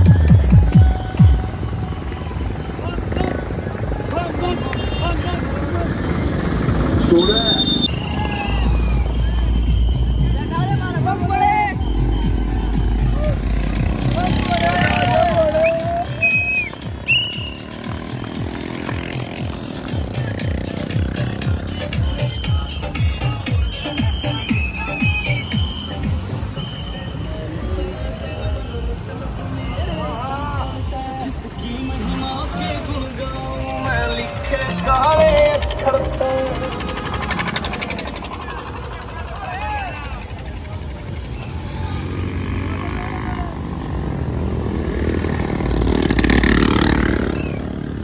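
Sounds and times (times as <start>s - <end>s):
music with steady beat: 0.0s - 1.6s, 19.8s - 26.6s
loudspeaker music: 0.0s - 1.9s, 8.6s - 17.0s, 19.4s - 26.8s, 29.6s - 38.5s
motorcycle engines: 0.0s - 48.0s
short whistle blasts: 7.1s - 10.6s, 15.6s - 17.7s, 22.1s - 27.4s
men shouting: 12.7s - 16.5s.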